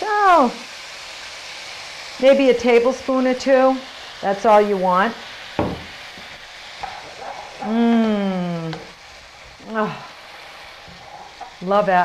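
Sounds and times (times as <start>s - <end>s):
vegetables sizzling in a wok: 0.0s - 12.0s
sharp knock: 5.6s - 5.9s
spatula stirring: 6.2s - 8.0s, 10.2s - 12.0s.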